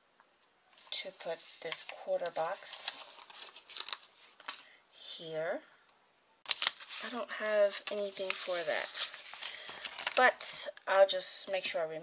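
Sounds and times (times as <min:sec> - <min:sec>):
paper rustling: 0:00.7 - 0:04.8, 0:06.5 - 0:10.3.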